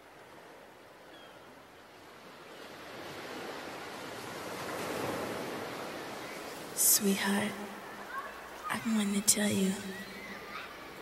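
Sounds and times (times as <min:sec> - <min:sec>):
ocean waves washing: 0:00.0 - 0:11.0.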